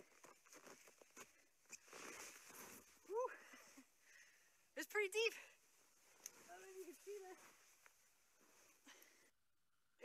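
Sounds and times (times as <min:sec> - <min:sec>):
person exclaiming: 0:03.1 - 0:03.4
soft rush of snow: 0:05.7 - 0:08.9.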